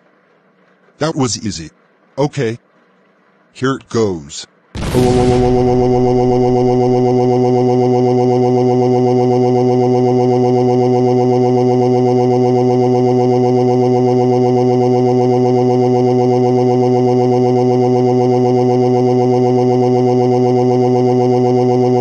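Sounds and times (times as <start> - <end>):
synthetic voice holding a long oh: 5.2 - 22.0.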